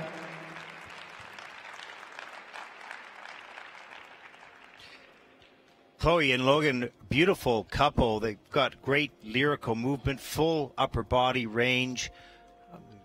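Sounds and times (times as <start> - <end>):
small audience applauding: 0.0 - 6.0.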